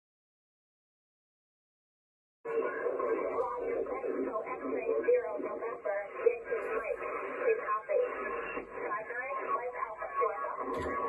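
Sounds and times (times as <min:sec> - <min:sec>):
radio voice through speaker: 0:02.5 - 0:11.0.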